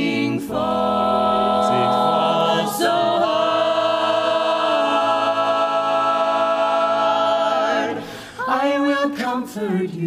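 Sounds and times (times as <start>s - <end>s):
a cappella chorus singing harmony: 0.0s - 10.0s.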